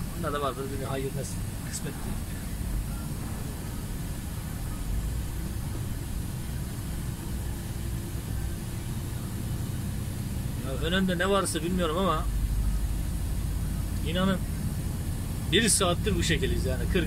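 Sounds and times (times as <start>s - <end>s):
faint steady hum: 0.0s - 17.0s
lorry diesel engine rumble: 0.0s - 17.0s.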